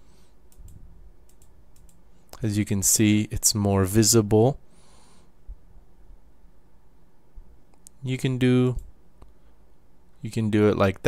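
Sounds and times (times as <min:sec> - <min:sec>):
computer mouse and keyboard clicks: 0:00.5 - 0:02.0.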